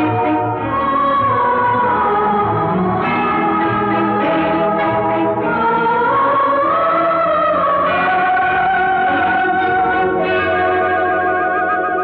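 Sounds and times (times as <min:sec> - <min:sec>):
instrumental film music: 0:00.0 - 0:12.0.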